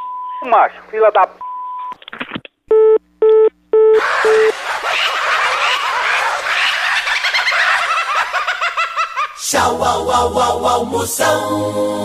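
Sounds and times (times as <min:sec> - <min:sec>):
telephone busy signal beeps: 0:01.4 - 0:02.0
comic chirping sound effect: 0:03.9 - 0:04.6.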